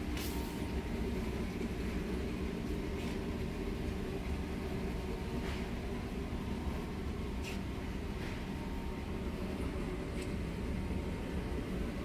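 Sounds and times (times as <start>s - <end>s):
ventilation: 0.0s - 12.0s.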